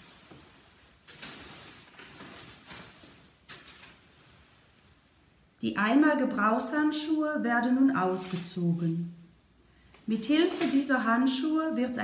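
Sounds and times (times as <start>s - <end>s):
plastic shoe covers rustling: 0.0s - 5.2s, 8.0s - 9.0s.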